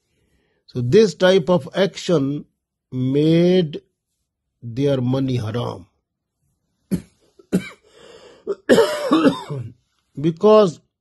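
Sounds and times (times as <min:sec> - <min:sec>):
man coughing: 0:06.9 - 0:09.8.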